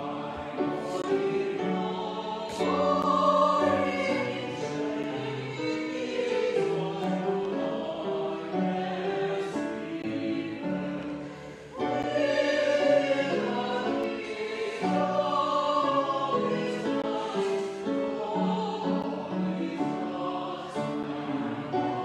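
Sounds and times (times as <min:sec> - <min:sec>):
small choir singing a hymn: 0:00.0 - 0:22.0.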